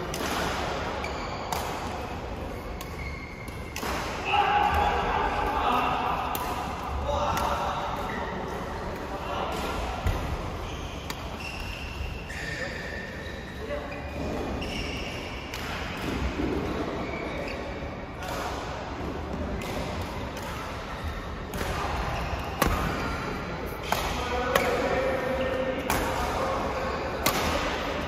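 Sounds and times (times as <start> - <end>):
rackets hitting shuttlecock: 0.0 - 5.4, 19.4 - 28.0.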